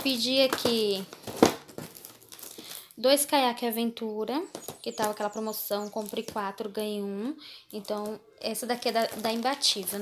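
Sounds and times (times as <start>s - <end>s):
sharp plastic crackle: 0.0s - 3.0s, 4.5s - 6.6s, 7.7s - 10.0s
plastic shrink-wrap crinkling: 0.0s - 3.1s, 4.5s - 6.8s, 7.7s - 10.0s.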